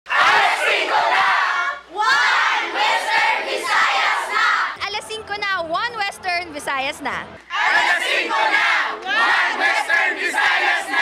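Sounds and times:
crowd shouting in unison: 0.1 - 4.8, 7.5 - 11.0
woman calling into a microphone: 4.8 - 7.4.

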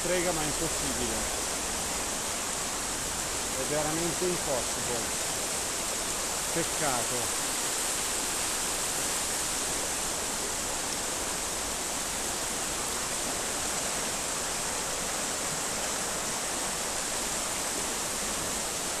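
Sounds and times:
river rushing: 0.0 - 19.0.

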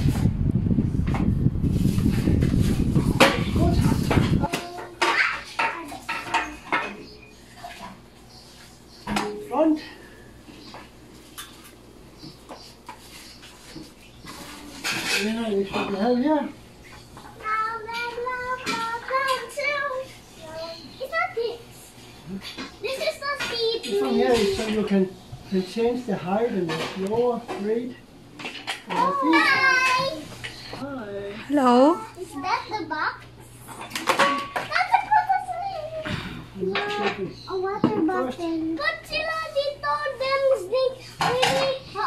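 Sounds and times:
microphone handling rumble: 0.0 - 4.5.

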